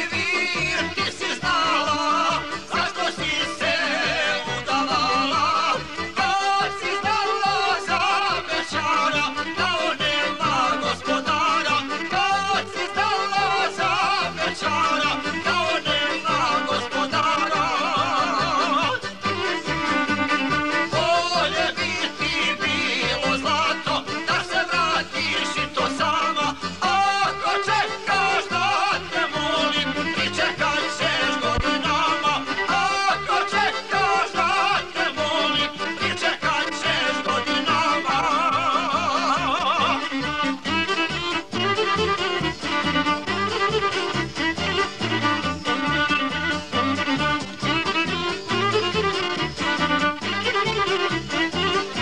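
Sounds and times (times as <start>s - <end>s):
folk music: 0.0s - 52.0s.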